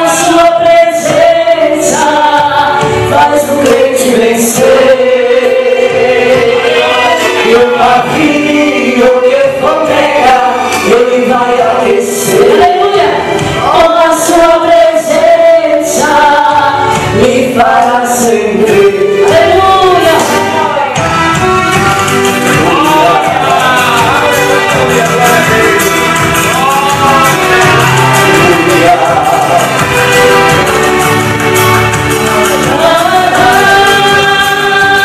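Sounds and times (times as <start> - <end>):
instrumental accompaniment: 0.0 - 35.0
man and woman singing gospel: 0.0 - 35.0.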